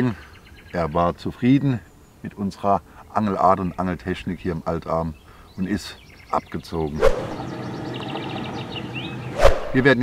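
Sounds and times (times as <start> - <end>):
small bird trilling: 6.9 - 9.5.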